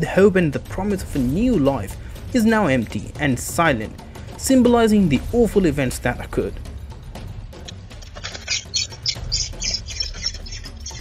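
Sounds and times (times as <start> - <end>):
bird squeaky calls: 8.0 - 11.0.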